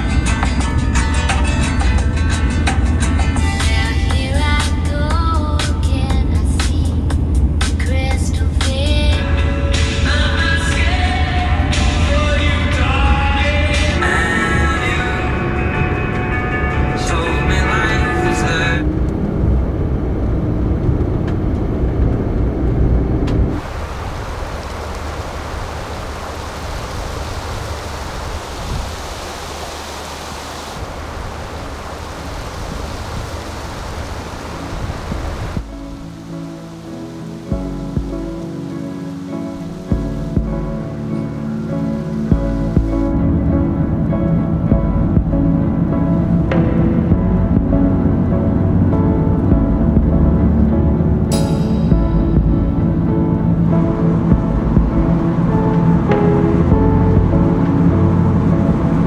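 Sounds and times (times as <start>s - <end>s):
slow music with low held notes: 0.0s - 23.6s, 33.4s - 59.0s
steady rushing noise: 0.0s - 59.0s
song with singing voice: 3.0s - 18.8s.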